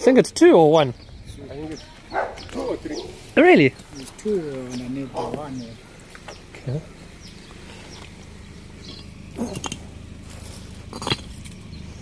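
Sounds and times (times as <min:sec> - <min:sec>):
steady low hum: 0:00.0 - 0:12.0
concrete rubble knocking and scraping: 0:10.4 - 0:11.6.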